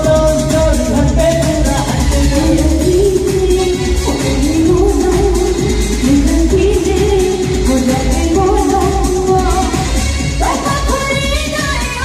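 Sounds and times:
musical accompaniment with low bass: 0:00.0 - 0:12.0
person singing into microphone: 0:00.0 - 0:12.0.

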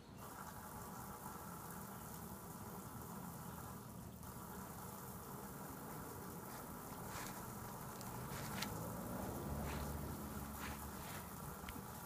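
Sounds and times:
garden hose spraying water: 0:00.0 - 0:12.0.

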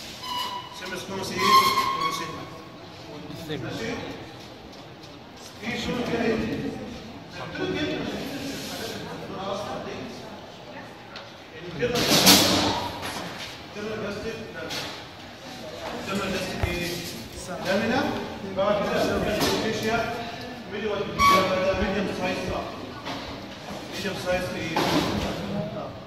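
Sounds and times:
man talking in echoing room: 0:00.3 - 0:04.3, 0:05.5 - 0:10.2, 0:11.5 - 0:15.1, 0:16.0 - 0:23.0, 0:23.7 - 0:26.0.

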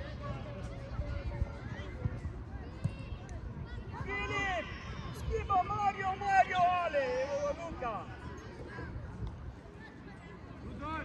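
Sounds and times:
wind rumble on microphone: 0:00.0 - 0:04.1.

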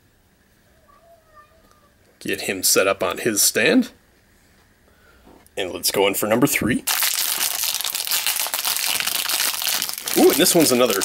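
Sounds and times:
foil wrapper crinkling: 0:06.9 - 0:11.0.

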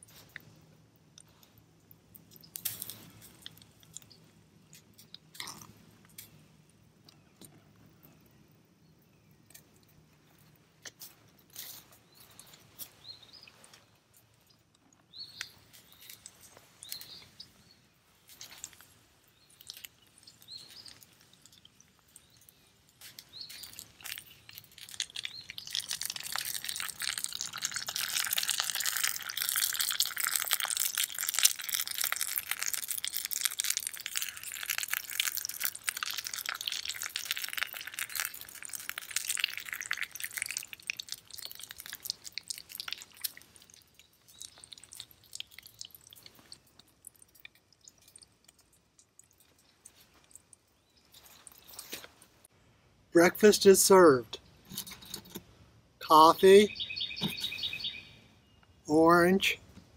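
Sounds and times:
egg sizzling in a pan: 0:23.9 - 0:46.0.

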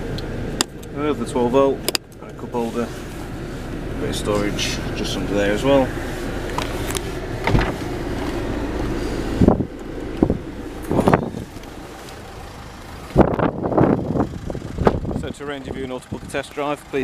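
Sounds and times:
car door clunk with rattling: 0:07.4 - 0:08.4, 0:13.1 - 0:15.2.

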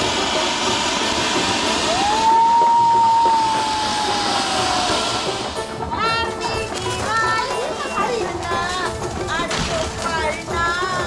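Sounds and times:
firework whistle: 0:00.0 - 0:08.2
firework hissing: 0:00.0 - 0:11.0.

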